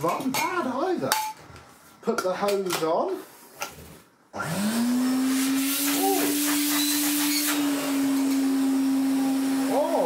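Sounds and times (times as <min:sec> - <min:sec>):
vacuum cleaner motor humming: 0:04.4 - 0:10.0.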